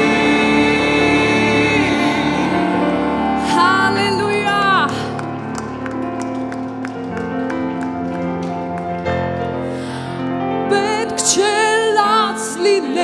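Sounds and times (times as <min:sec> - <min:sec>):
person singing: 0:00.0 - 0:05.2
keyboard chords: 0:00.0 - 0:13.0.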